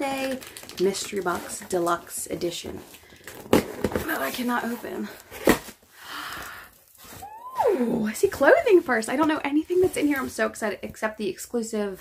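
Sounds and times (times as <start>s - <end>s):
woman saying ooh: 7.2s - 8.1s.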